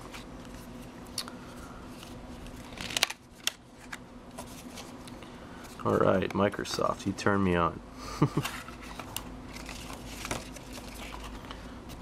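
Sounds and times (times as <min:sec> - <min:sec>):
faint steady hum: 0:00.0 - 0:12.0
cardboard packaging crinkling: 0:08.4 - 0:11.6.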